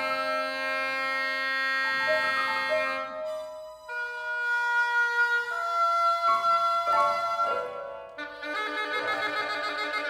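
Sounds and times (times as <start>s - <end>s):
oboe holding a long note: 0.0s - 10.0s
piano: 0.0s - 10.0s.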